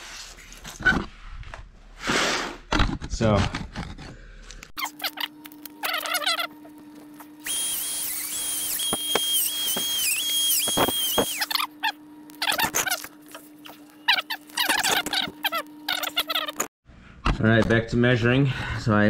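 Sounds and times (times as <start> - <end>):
rotary tool cutting hose: 7.4 - 11.7
short squeaky sounds: 7.5 - 16.7.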